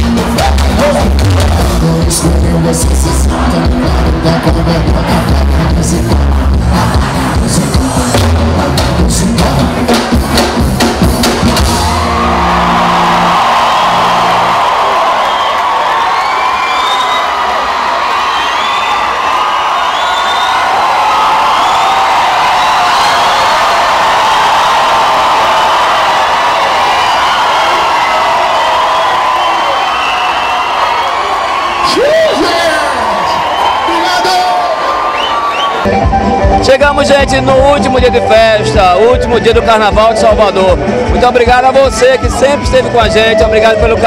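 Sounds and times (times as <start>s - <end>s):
band drumming and bass: 0.0s - 14.6s, 35.8s - 44.0s
crowd cheering and screaming: 0.0s - 37.2s, 40.5s - 44.0s.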